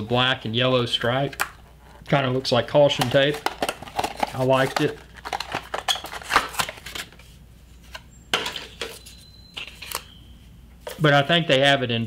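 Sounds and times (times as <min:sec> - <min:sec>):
paper wrapping crinkling: 0:03.0 - 0:07.2.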